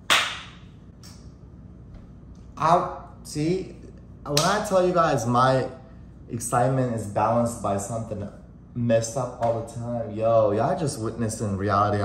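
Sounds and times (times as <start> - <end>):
sharp crack: 0.1 - 0.6.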